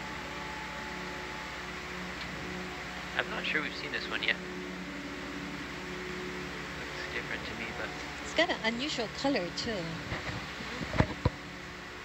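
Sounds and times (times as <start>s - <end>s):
faint steady tones: 0.0s - 12.0s
fans and ventilation hum: 0.0s - 12.0s.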